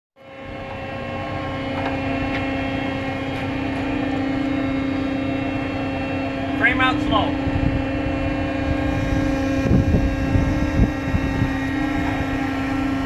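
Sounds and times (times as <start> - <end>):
deck machinery humming: 0.2 - 13.0.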